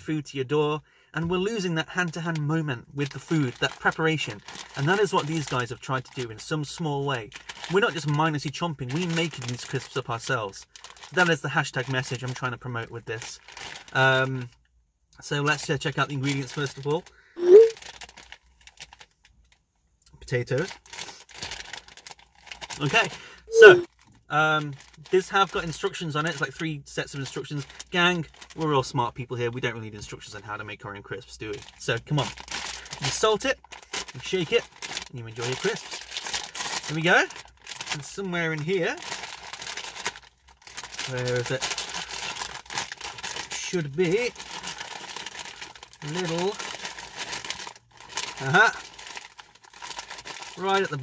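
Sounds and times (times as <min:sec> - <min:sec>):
crisp packet crinkling: 0:02.0 - 0:14.4, 0:15.5 - 0:19.6, 0:20.4 - 0:28.9, 0:31.4 - 0:51.0
person humming hm: 0:17.4 - 0:17.8, 0:23.5 - 0:23.9.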